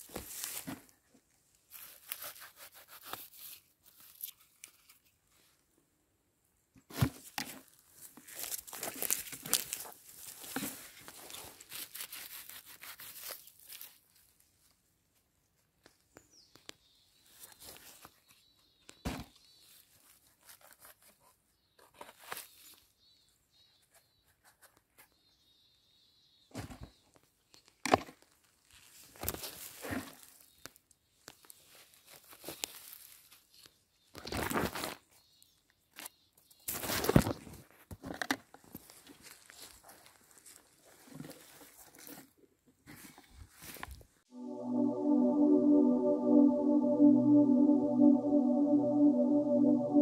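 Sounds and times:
lichen and needles rustling: 8.0s - 14.6s, 31.3s - 33.8s
music: 44.3s - 50.0s.

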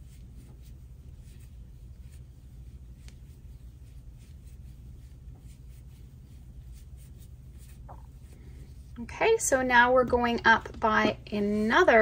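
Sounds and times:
yarn rustling: 0.0s - 9.1s
steady low hum: 0.0s - 12.0s.

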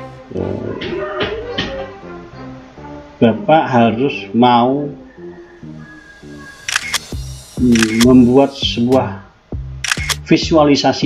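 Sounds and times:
soft background music: 0.0s - 11.0s
man speaking: 0.3s - 1.1s, 3.2s - 5.0s, 7.6s - 9.3s, 10.2s - 11.0s
sharp clicks: 6.6s - 8.2s, 9.8s - 10.3s.

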